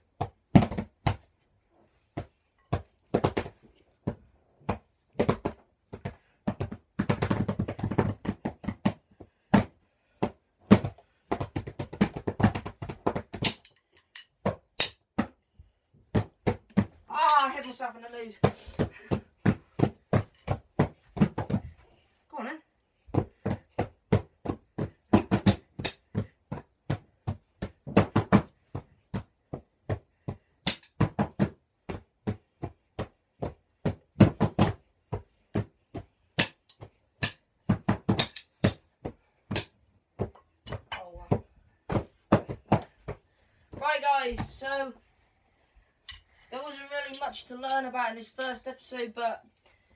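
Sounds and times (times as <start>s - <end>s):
drumsticks beating drums: 13.4s - 15.0s, 38.1s - 38.8s.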